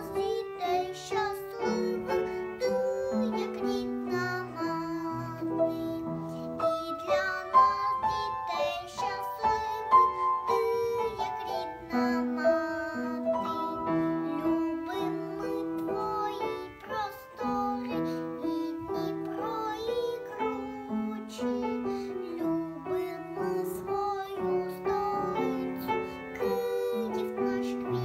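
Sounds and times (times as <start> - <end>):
girl singing: 0.0 - 28.0.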